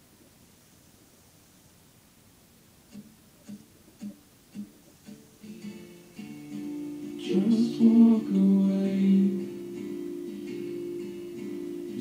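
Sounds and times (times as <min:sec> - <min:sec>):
guitar notes: 0:02.9 - 0:12.0.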